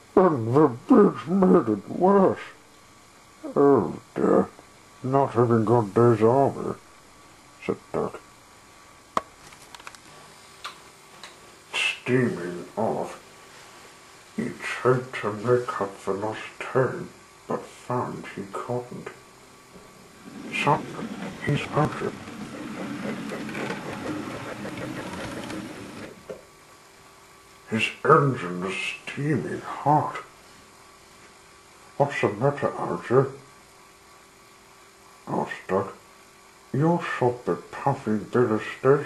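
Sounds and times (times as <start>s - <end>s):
model train running on track: 20.3s - 26.2s.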